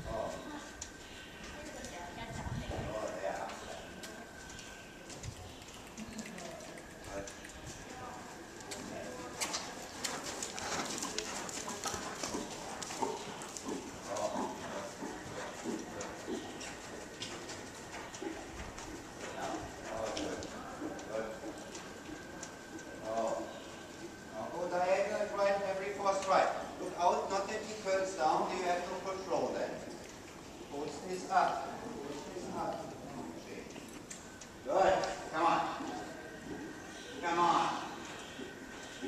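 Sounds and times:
faint indistinct voices: 0.0s - 29.9s, 30.6s - 39.0s
horse hoofbeats on dirt: 1.4s - 33.4s, 34.2s - 39.0s.

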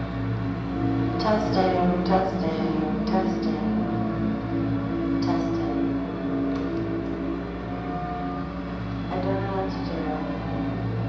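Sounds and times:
electronic music with held tones: 0.0s - 11.0s
steady low hum: 0.0s - 11.0s.

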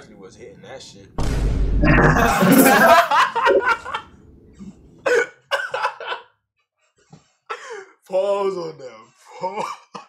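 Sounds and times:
man laughing: 2.1s - 4.0s.

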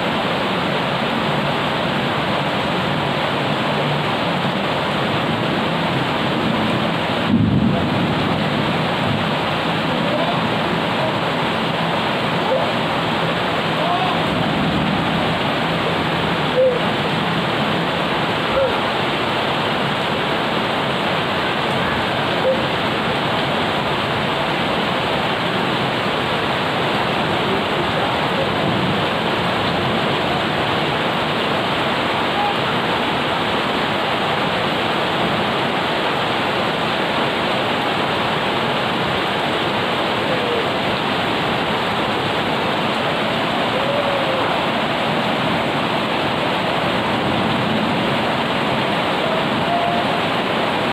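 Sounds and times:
steady rain on plants and paving: 0.0s - 50.9s.

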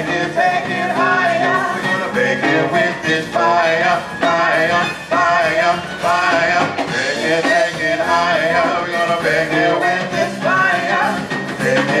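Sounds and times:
bass: 0.0s - 12.0s
electric guitar: 0.0s - 12.0s
keyboard: 0.0s - 12.0s
person singing: 0.0s - 12.0s.

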